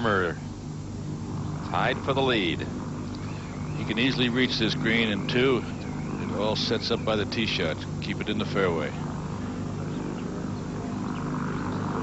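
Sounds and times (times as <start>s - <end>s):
low droning hum: 0.0s - 12.0s
outdoor ambience: 0.0s - 12.0s.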